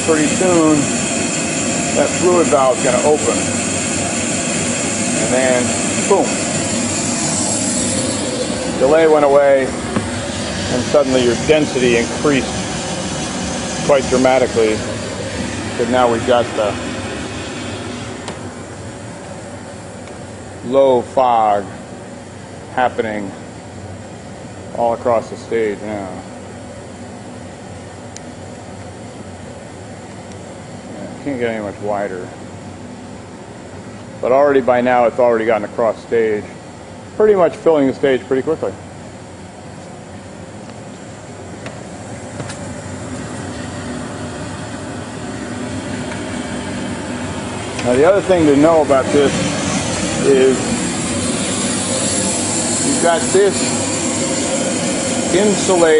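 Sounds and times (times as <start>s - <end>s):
fog machine hissing: 0.0s - 22.0s, 41.6s - 55.9s.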